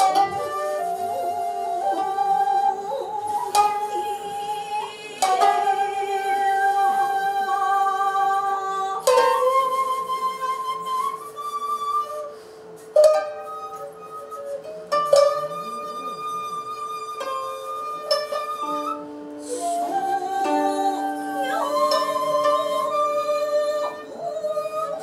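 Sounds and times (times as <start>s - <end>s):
plucked koto and shamisen: 0.0s - 25.0s
shakuhachi held notes: 0.0s - 25.0s.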